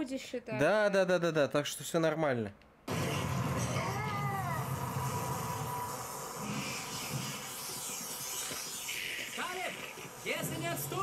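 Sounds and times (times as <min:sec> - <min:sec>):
thin held whine: 0:02.9 - 0:11.0
cartoon wailing cry: 0:03.8 - 0:04.8.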